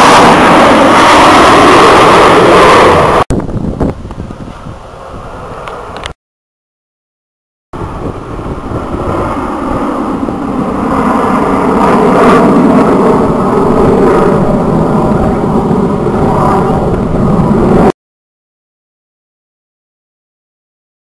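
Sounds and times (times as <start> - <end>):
jet engines rumbling overhead: 0.0 - 6.2, 7.8 - 18.0.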